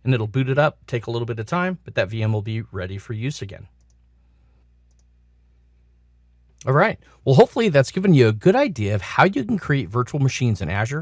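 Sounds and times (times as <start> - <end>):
faint electrical hum: 0.0 - 11.0
faint click: 4.9 - 5.1.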